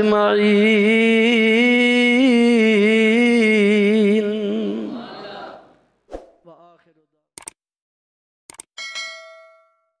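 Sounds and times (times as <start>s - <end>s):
bell ding: 8.8s - 10.0s.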